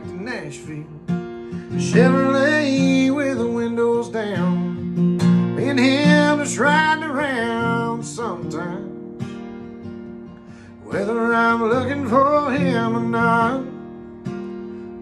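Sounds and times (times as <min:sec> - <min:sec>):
man singing country song: 0:00.0 - 0:09.3, 0:10.5 - 0:14.4
strummed acoustic guitar: 0:00.0 - 0:15.0.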